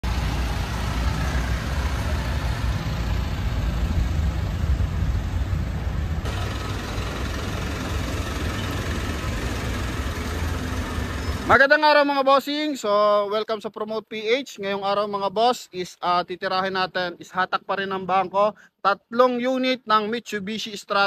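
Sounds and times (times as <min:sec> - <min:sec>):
diesel engine low rumble: 0:00.0 - 0:11.7.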